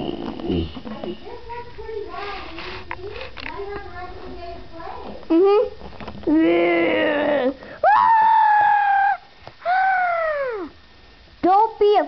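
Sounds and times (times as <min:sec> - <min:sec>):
child screaming high-pitched: 0:07.8 - 0:10.8.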